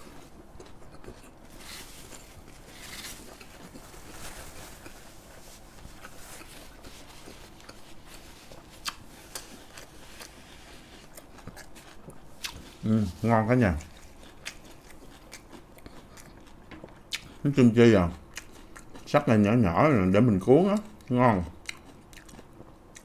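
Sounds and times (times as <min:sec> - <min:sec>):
closed-mouth chewing: 0:00.0 - 0:19.2, 0:20.7 - 0:23.0.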